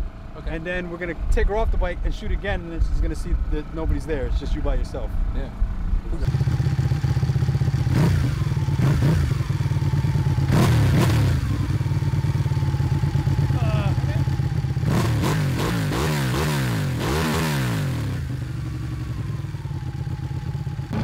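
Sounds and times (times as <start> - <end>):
motorcycle engine revving: 2.4 - 21.0.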